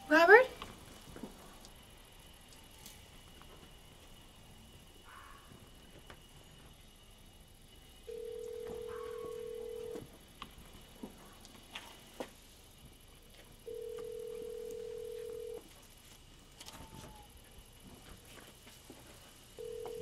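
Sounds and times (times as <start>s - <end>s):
mobile phone electronic tone: 8.1s - 10.0s, 13.7s - 15.6s, 19.6s - 20.0s.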